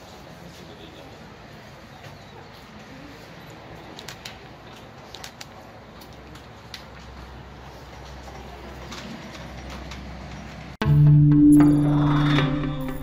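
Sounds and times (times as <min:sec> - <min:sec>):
music: 0:10.8 - 0:13.0.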